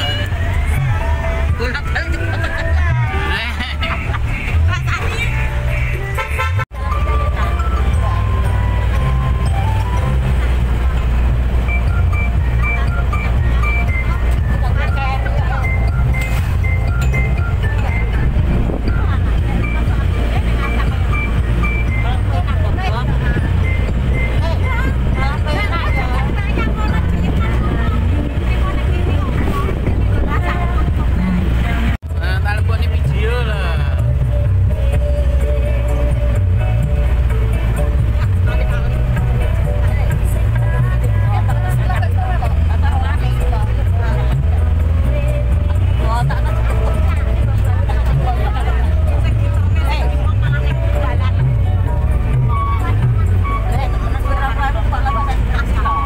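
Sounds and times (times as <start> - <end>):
loud music with singer: 0.0 - 10.8, 12.0 - 56.0
low engine rumble: 0.0 - 56.0.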